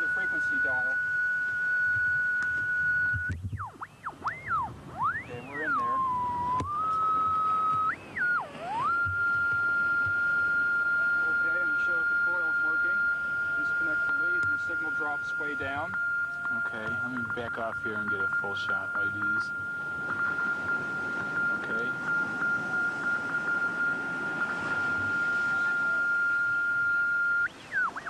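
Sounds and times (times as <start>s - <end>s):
shortwave receiver whistle tone: 0.0s - 28.0s.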